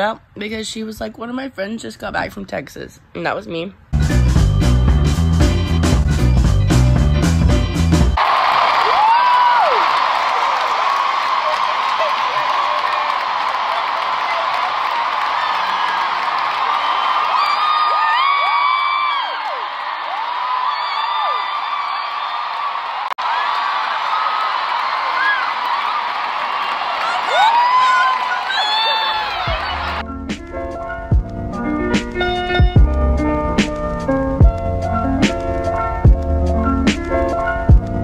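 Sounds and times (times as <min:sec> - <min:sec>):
crowd cheering and screaming: 0:08.2 - 0:30.0
high whoops: 0:08.2 - 0:30.0.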